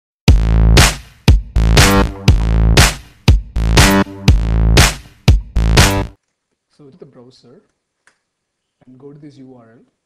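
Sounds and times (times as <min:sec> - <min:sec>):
electronic drum machine music: 0:00.3 - 0:06.2.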